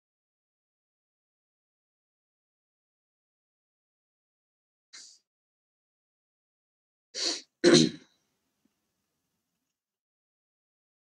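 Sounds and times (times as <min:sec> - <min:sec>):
man clearing his throat: 0:07.6 - 0:08.1.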